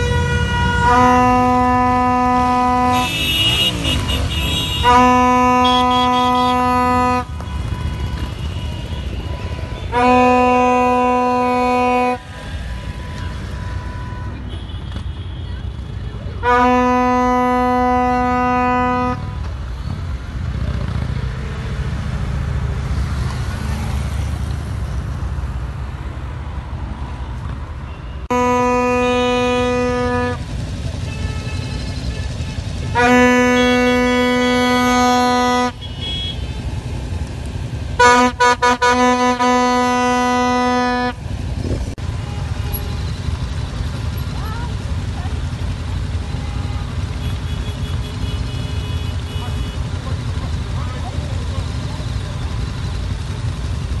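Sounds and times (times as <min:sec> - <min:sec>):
vehicle horn honking: 0:00.0 - 0:15.7, 0:16.4 - 0:19.5, 0:27.9 - 0:36.7, 0:38.0 - 0:41.4, 0:46.0 - 0:50.5
passing traffic rumble: 0:00.0 - 0:54.0.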